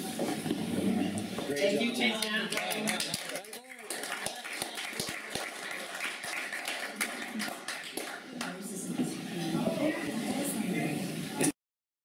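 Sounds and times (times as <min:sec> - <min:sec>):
audience clapping: 0:02.0 - 0:08.7.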